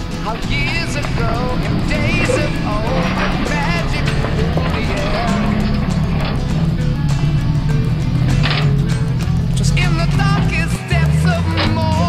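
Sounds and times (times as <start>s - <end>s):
song with singing voice: 0.0s - 12.0s.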